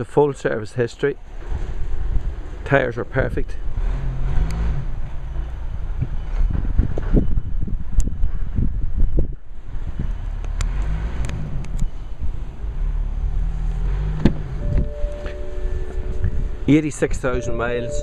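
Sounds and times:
wind buffeting microphone: 6.0 - 10.4, 14.2 - 17.9.

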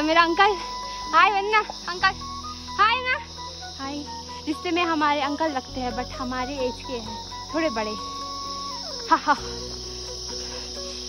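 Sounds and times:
background music of held notes: 0.0 - 11.0
high-pitched insect drone: 0.0 - 11.0.

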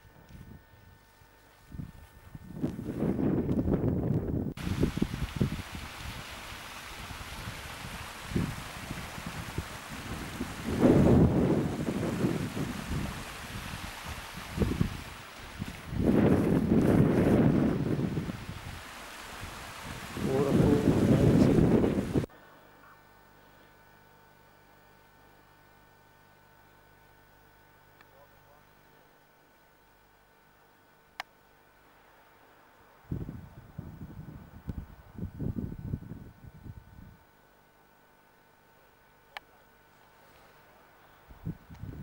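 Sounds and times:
wind buffeting microphone: 1.7 - 6.4, 7.0 - 18.8, 19.4 - 22.3, 33.1 - 37.2, 41.3 - 42.0
steady hiss: 4.6 - 22.9.

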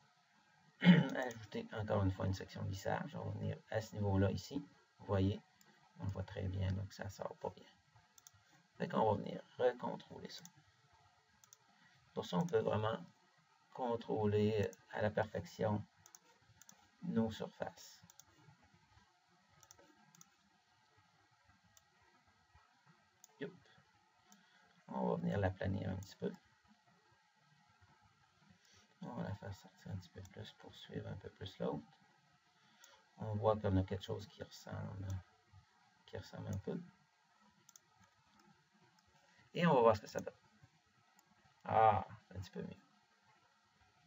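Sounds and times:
computer mouse clicks: 8.2 - 8.6, 11.4 - 11.7, 16.0 - 16.8, 18.0 - 18.5, 19.6 - 20.4, 37.6 - 39.2, 41.2 - 41.4.

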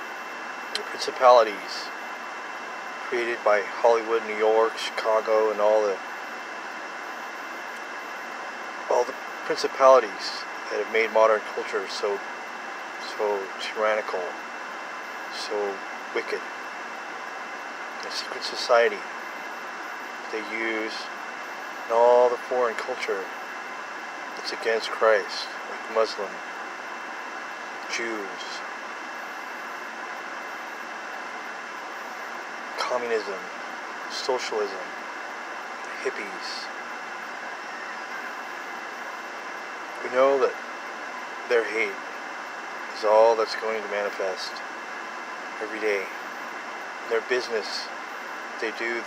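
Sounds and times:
rushing noise in car cabin: 0.0 - 49.0
man speaking: 0.8 - 1.9, 3.1 - 6.0, 8.9 - 12.2, 13.0 - 14.4, 15.3 - 16.4, 18.0 - 19.0, 20.3 - 21.1, 21.9 - 23.3, 24.4 - 26.4, 27.9 - 28.6, 32.8 - 33.5, 34.1 - 34.9, 35.9 - 36.7, 40.0 - 40.6, 41.5 - 42.0, 42.9 - 44.6, 45.6 - 46.1, 47.1 - 47.9, 48.6 - 49.0.

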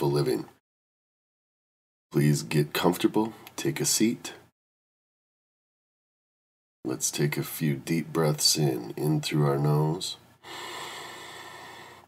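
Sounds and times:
person breathing in through nose: 10.4 - 12.0.

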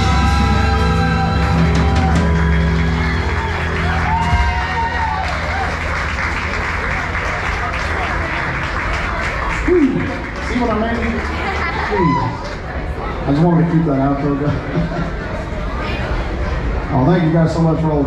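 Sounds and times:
live band playing: 0.0 - 12.4
crowd voices: 0.0 - 18.0
applause: 1.0 - 13.0.

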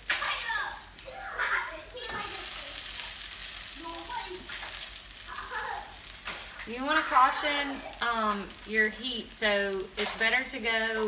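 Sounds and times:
food sizzling in oil: 0.0 - 11.0
spatula scraping skillet: 1.4 - 11.0.

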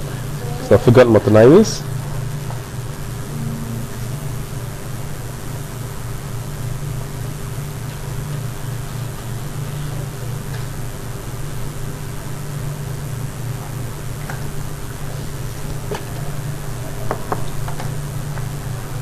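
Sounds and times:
low hum: 0.0 - 17.1.

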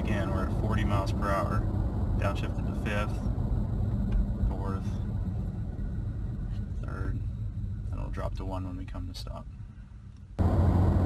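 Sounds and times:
engine and road rumble in cab: 0.0 - 11.0
transmission downshifting: 0.0 - 11.0.

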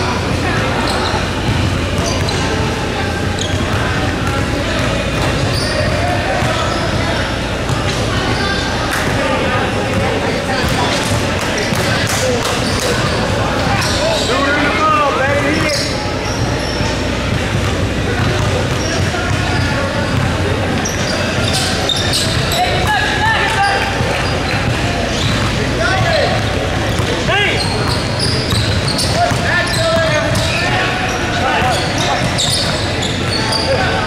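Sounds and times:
voices calling out in hall: 0.0 - 34.0.

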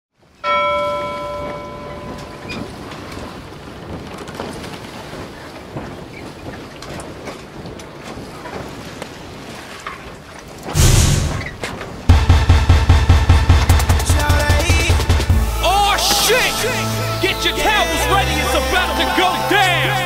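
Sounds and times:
ringing chime tone: 0.4 - 2.8
steady noisy rumble: 10.8 - 15.9.

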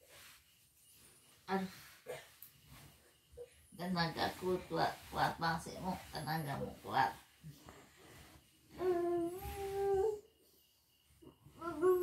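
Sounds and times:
person humming long note: 8.8 - 10.2.

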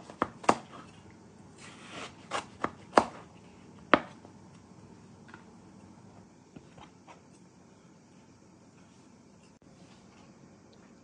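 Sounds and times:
knife chopping on cutting board: 0.0 - 0.9, 1.9 - 3.3, 3.9 - 4.2.

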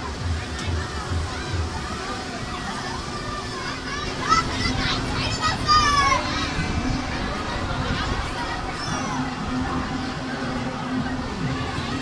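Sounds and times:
children shouting: 0.0 - 12.0
crowd chatter: 0.0 - 12.0.

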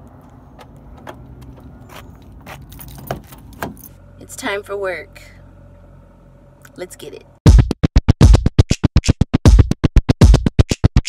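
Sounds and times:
low steady rumble: 0.0 - 7.5.

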